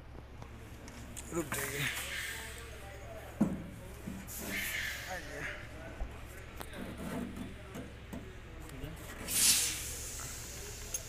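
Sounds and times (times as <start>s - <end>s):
indistinct background voices: 0.4s - 11.0s.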